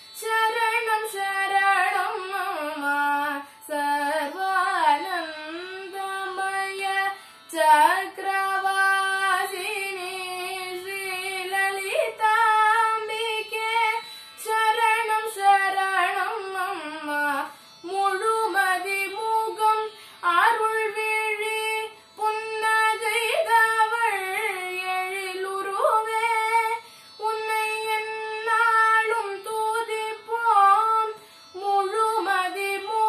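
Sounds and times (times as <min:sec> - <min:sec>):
singer breathing: 0:07.1 - 0:07.5, 0:14.0 - 0:14.4, 0:17.5 - 0:17.8, 0:19.9 - 0:20.2, 0:26.8 - 0:27.2, 0:31.2 - 0:31.6.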